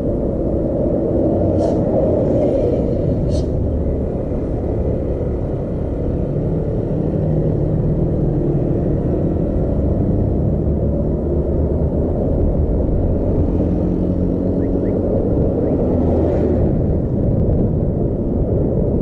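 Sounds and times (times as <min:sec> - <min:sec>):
vehicle engine and road rumble: 0:00.0 - 0:19.0.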